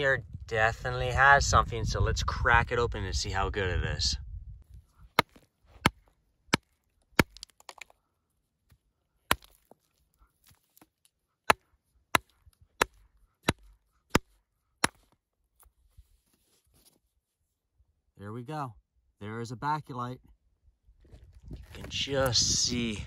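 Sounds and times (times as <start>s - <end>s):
hammer striking stone: 9.3s - 9.6s.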